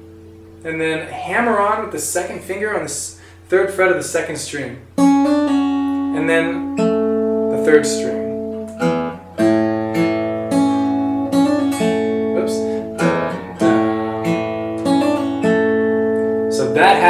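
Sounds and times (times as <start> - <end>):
fingerpicked acoustic guitar: 0.0 - 4.2, 4.8 - 17.0.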